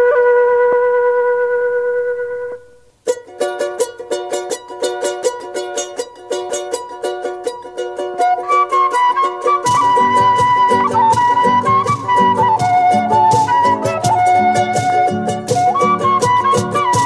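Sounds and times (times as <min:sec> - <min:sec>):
flute playing: 0:00.0 - 0:02.8, 0:07.8 - 0:17.0
plucked string instrument strumming: 0:02.4 - 0:17.0.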